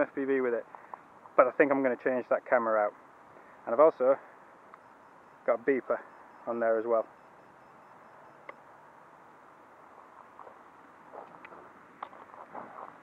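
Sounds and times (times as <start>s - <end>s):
footsteps on gravel and grass: 10.2s - 13.0s.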